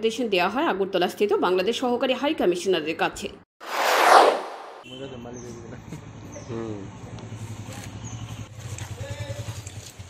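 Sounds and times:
vehicle engine running: 6.9s - 10.0s.

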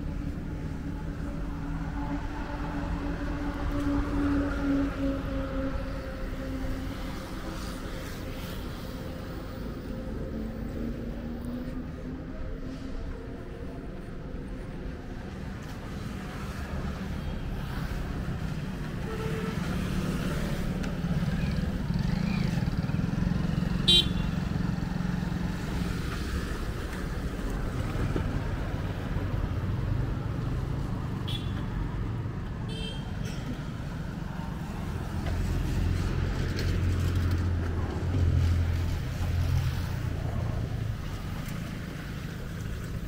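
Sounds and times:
motor vehicles passing: 19.7s - 32.6s
car horn toot: 23.9s - 24.3s.

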